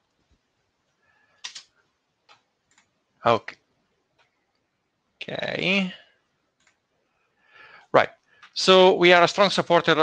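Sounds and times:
computer mouse or keyboard clicks: 1.4 - 1.7, 2.3 - 2.9, 6.6 - 6.8.

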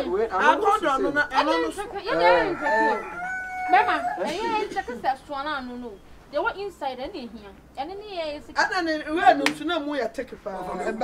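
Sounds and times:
people's voices: 0.0 - 8.6
rooster crowing: 2.1 - 4.4.

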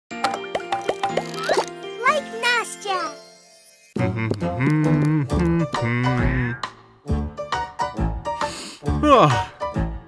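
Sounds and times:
child's playful voice: 1.4 - 3.2.

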